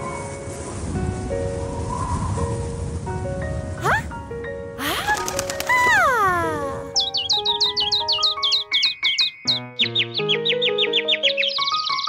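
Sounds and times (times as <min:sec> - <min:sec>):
light background music: 0:00.0 - 0:12.0
cartoon birds chirping: 0:04.8 - 0:12.0.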